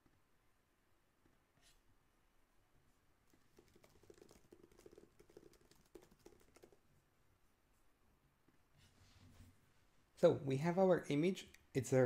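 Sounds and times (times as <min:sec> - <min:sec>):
typing on keyboard: 0:03.3 - 0:06.8.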